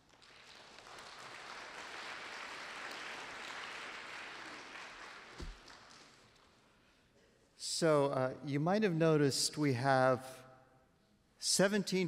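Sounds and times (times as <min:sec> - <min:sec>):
audience applauding: 0:00.0 - 0:06.2
single thump: 0:05.4 - 0:05.7.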